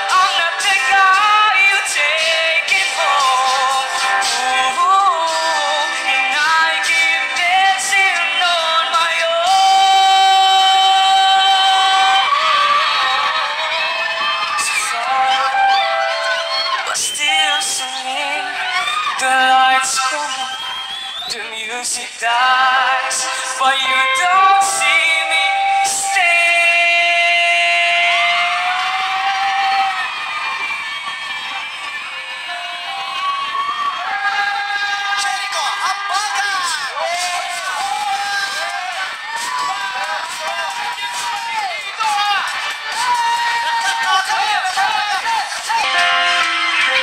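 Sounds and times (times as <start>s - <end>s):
audience cheering and screaming: 0.0s - 21.4s, 22.6s - 47.0s
backing music: 0.0s - 47.0s.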